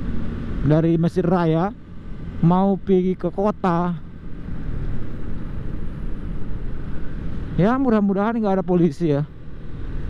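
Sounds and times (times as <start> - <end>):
motorcycle engine rumble: 0.0 - 10.0.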